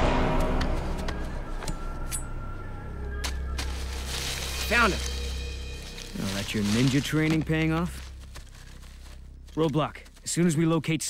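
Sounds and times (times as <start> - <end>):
low sustained drone music: 0.0 - 9.8.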